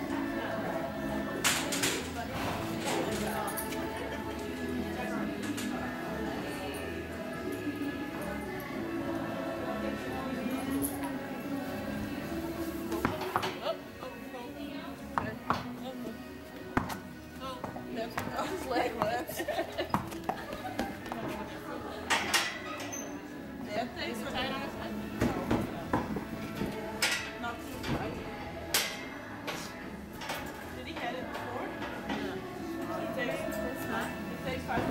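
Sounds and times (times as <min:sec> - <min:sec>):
background music: 0:00.0 - 0:34.9
voices: 0:00.0 - 0:34.9.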